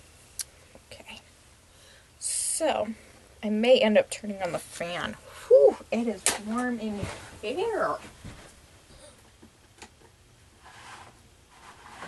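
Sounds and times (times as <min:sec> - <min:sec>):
low steady room hum: 0:00.0 - 0:12.0
faint rustling and handling noise: 0:05.8 - 0:12.0.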